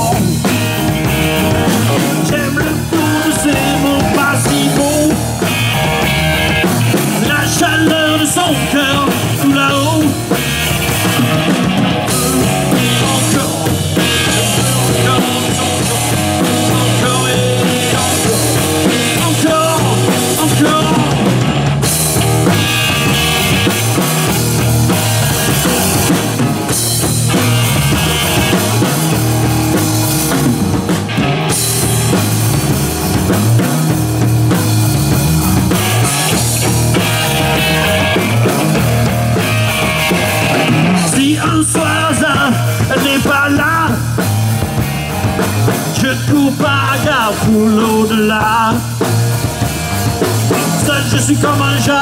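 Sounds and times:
bass guitar: 0:00.0 - 0:52.0
drum kit beat: 0:00.0 - 0:52.0
electric guitar: 0:00.0 - 0:52.0.

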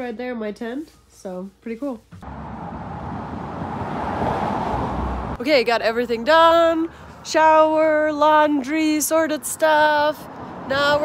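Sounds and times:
car engine and tyre noise: 0:02.1 - 0:05.4.

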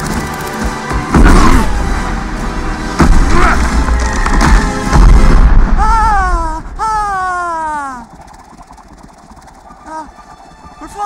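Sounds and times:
film music: 0:00.0 - 0:11.0
deep booming impacts: 0:02.9 - 0:05.8.

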